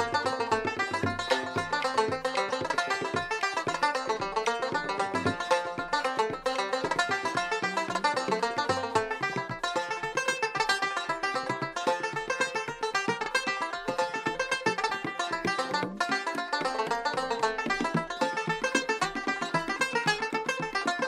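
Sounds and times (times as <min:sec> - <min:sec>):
banjo playing fast tune: 0:00.0 - 0:21.0.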